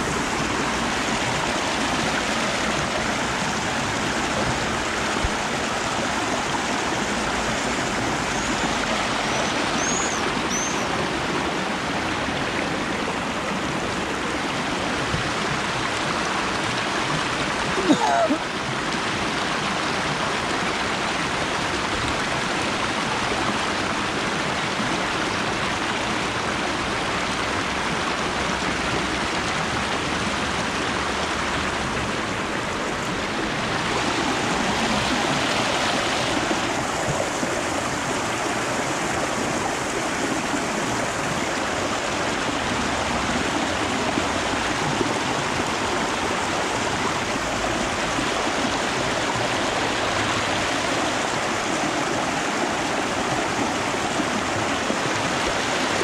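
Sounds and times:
water rushing over rocks: 0.0 - 56.0.

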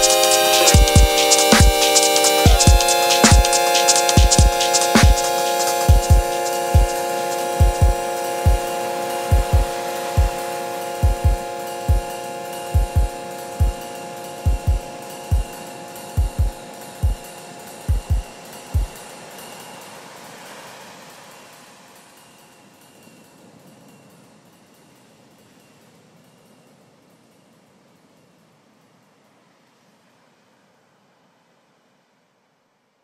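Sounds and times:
held synth chord: 0.0 - 21.9
hiss: 0.0 - 31.8.

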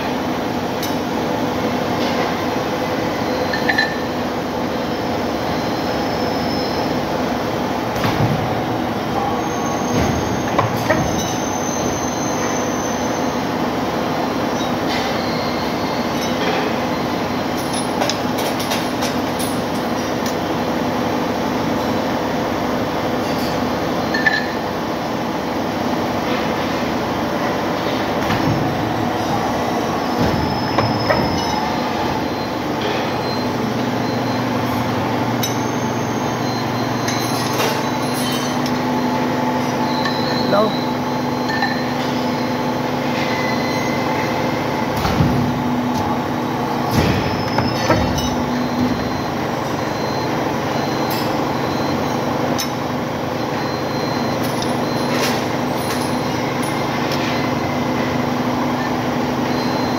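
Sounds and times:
hydraulic press humming: 0.0 - 59.9.

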